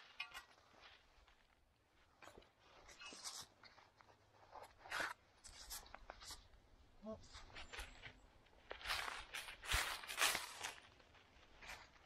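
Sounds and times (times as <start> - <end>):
soil and leaves scraping: 0.0 - 12.0.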